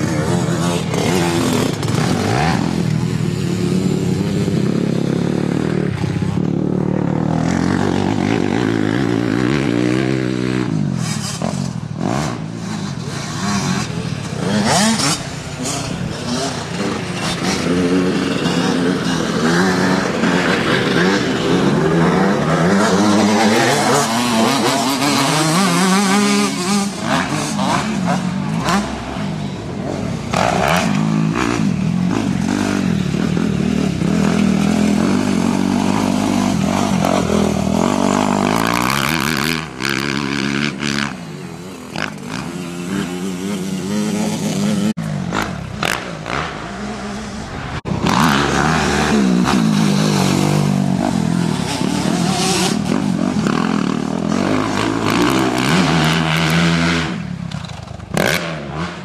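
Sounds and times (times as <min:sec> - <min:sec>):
motocross bike revving: 0:00.0 - 0:59.0.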